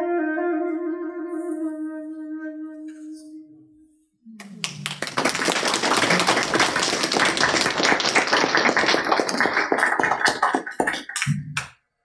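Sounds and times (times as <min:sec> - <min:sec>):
small group clapping: 0:04.4 - 0:11.8.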